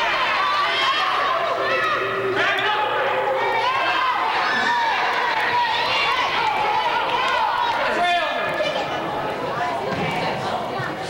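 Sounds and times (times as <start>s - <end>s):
spectators and players calling out: 0.0s - 11.0s.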